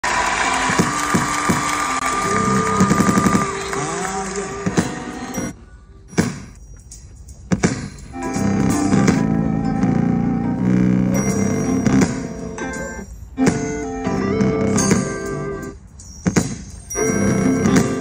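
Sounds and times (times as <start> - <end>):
gospel music playing: 0.1 - 5.6.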